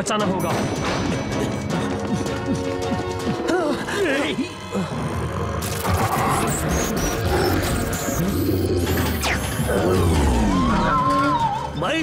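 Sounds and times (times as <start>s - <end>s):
background music: 0.0s - 12.0s
robotic creature growling: 3.8s - 11.7s.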